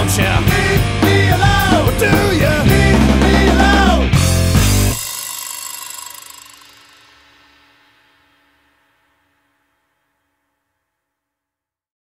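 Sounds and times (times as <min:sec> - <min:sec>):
rock band final chord ringing: 0:00.0 - 0:08.6
guitar and cymbal ringing: 0:00.0 - 0:10.6.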